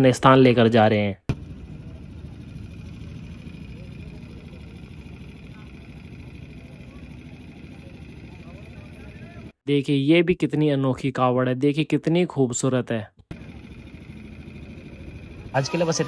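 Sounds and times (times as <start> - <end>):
truck engine rumbling: 1.3 - 9.6, 13.3 - 16.0
faint voices: 1.7 - 9.6.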